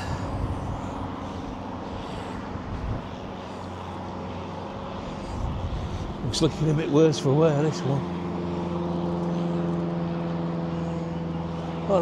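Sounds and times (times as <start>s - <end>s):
mechanical drone: 0.0s - 12.0s
outdoor background noise: 0.0s - 12.0s.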